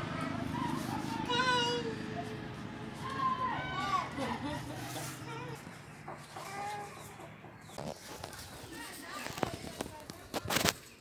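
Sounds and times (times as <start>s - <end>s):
bird calls: 4.8s - 9.5s.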